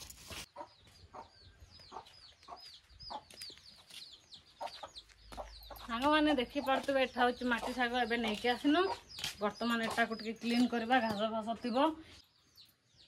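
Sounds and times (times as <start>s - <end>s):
chickens clucking: 0.4s - 10.7s
chickens peeping: 0.4s - 10.7s.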